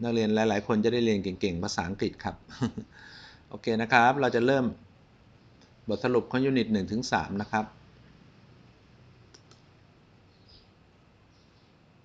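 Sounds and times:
computer mouse clicks: 9.3 - 9.7.

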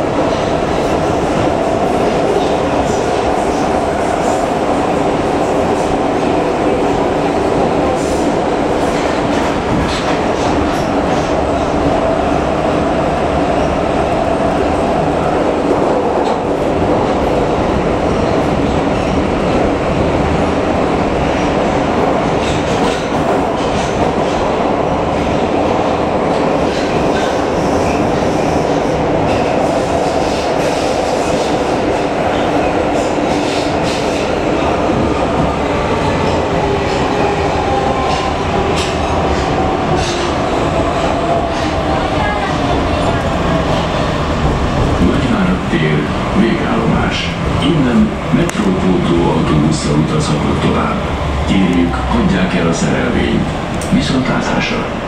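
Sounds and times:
metro train rumbling in tunnel: 0.0 - 55.0
wheels clacking on rails: 0.0 - 55.0.

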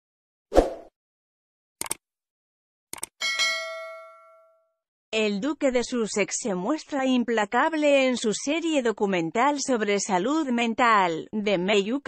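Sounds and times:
bright bell ding: 3.2 - 4.7.

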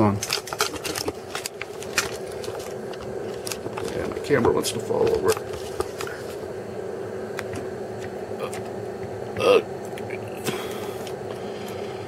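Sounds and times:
electronic equipment hum: 0.0 - 12.0.

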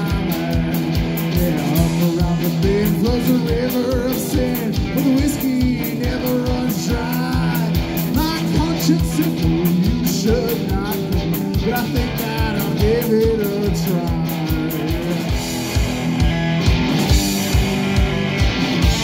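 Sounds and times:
live rock band: 0.0 - 19.0.

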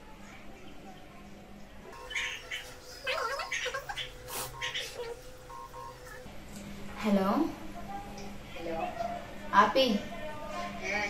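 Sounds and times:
electronic phone call tones: 3.1 - 6.3.

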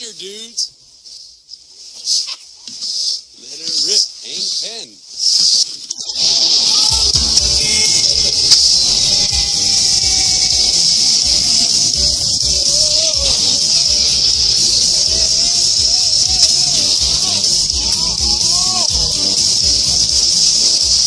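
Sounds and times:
sled hissing rush over snow: 2.9 - 21.0
wavering pitched sound: 5.9 - 21.0
soundtrack music: 6.8 - 21.0.

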